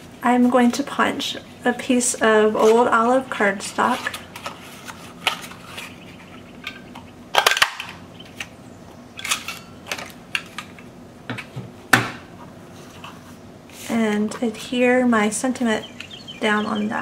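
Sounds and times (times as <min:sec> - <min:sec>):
paper rustling: 0:03.8 - 0:06.0.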